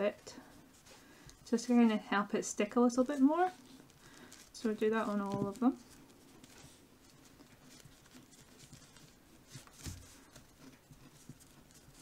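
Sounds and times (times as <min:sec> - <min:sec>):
plastic fork scratching dough: 0:02.6 - 0:12.0.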